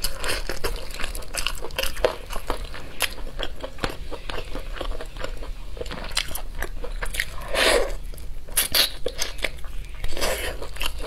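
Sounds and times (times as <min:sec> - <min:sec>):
chewing and biting: 0:00.0 - 0:11.0.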